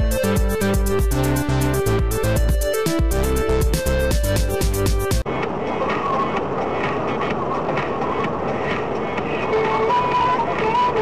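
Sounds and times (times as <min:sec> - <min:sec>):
electronic music: 0:00.0 - 0:11.0
faint music: 0:00.0 - 0:11.0
vehicle and road noise: 0:03.1 - 0:11.0.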